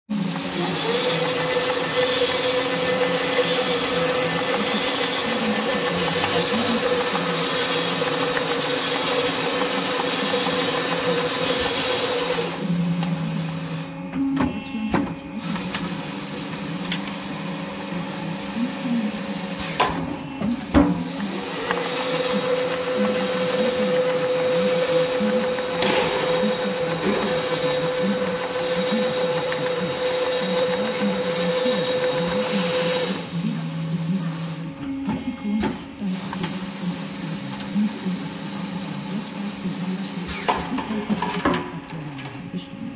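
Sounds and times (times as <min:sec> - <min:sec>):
machine whirring with a whine: 0:00.1 - 0:42.9.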